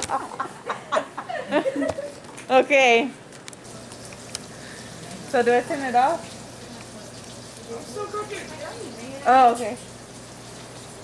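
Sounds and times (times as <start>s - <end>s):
food sizzling in frying pans: 3.6s - 11.0s.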